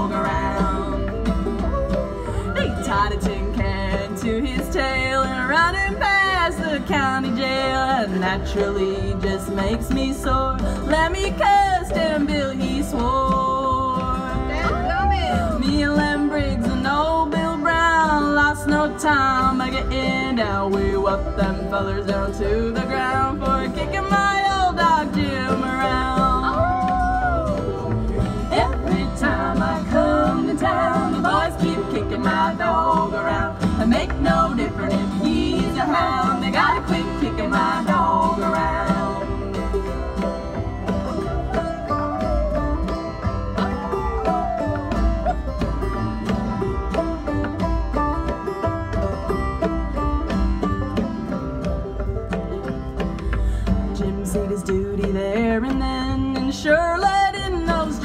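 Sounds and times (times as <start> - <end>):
banjo: 0.0 - 58.0
picked guitar: 0.0 - 58.0
upright bass: 0.0 - 58.0.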